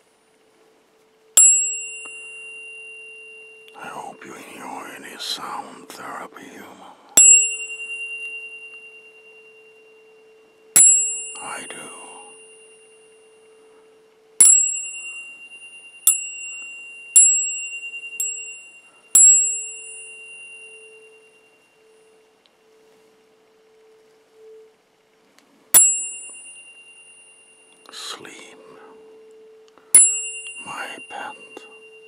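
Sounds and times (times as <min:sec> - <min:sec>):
tuning forks ringing: 0:00.0 - 0:24.8, 0:25.7 - 0:32.0
low steady hum: 0:00.0 - 0:32.0.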